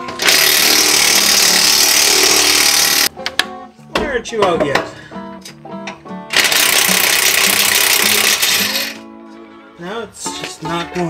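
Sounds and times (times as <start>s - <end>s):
impact wrench running: 0.2s - 3.1s, 6.3s - 9.0s.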